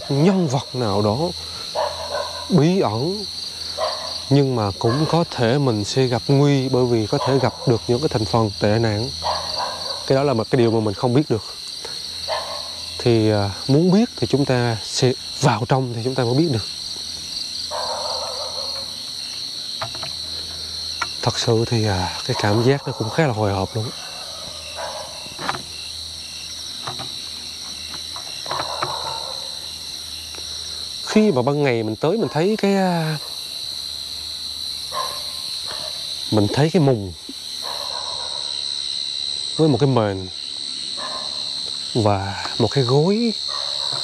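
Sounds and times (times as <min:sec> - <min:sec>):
crickets and night insects chirring: 0:00.0 - 0:44.0
rustling hiss: 0:00.0 - 0:44.0.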